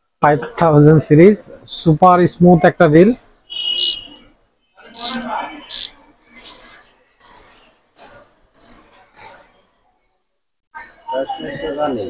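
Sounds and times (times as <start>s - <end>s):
fishing reel buzzing: 5.0s - 9.4s.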